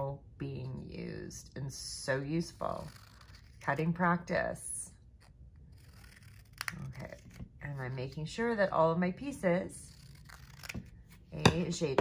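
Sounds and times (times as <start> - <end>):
scissors snipping paper: 5.7 - 7.4, 9.9 - 12.0.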